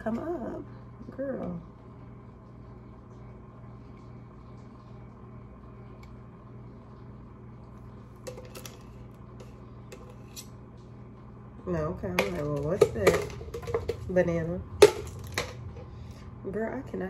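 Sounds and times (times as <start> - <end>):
low hum: 0.0 - 17.0
ice knocking in container: 12.2 - 14.1.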